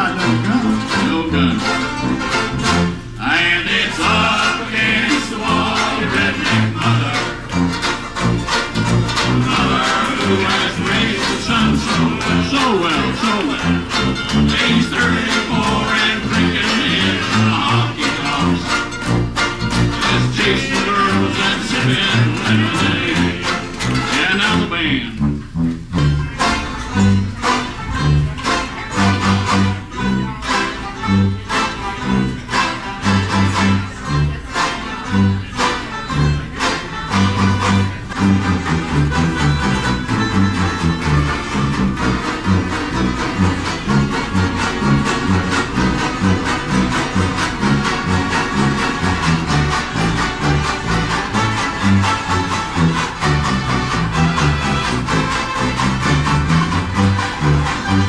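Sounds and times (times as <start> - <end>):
banjos strumming: 0.0 - 58.0
bass line: 0.0 - 58.0.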